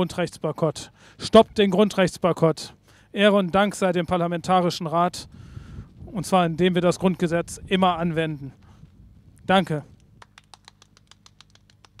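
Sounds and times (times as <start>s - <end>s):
low steady hum: 0.0s - 12.0s
small audience clapping: 10.1s - 12.0s.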